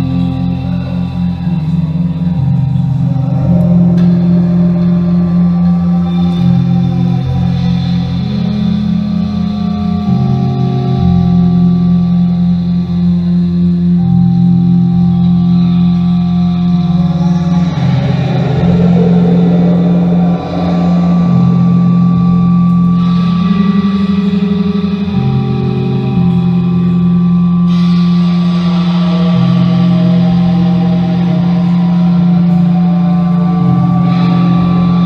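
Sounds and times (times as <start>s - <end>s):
low synthesizer drones: 0.0s - 35.0s
rough distorted noise texture: 15.1s - 30.7s.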